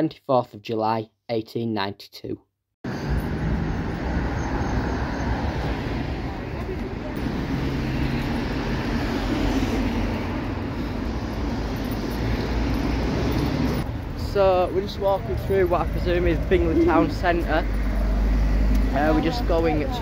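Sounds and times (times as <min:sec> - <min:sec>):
cars driving past: 0:02.9 - 0:20.0.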